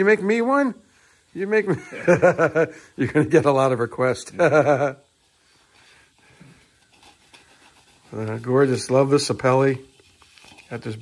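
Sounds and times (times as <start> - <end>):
faint soft noises: 5.0 - 11.0.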